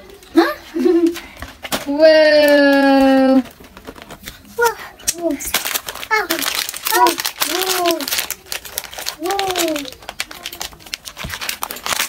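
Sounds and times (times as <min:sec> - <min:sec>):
packaging crinkling: 0:00.8 - 0:12.0.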